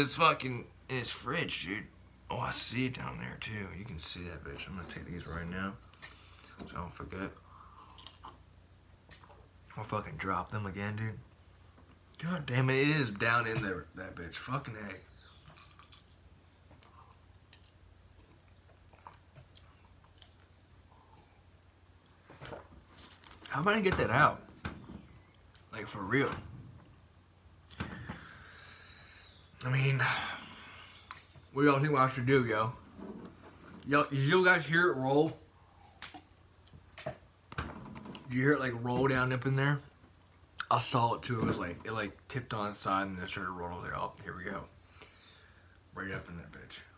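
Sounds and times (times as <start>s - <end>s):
low steady hum: 0.0s - 46.9s.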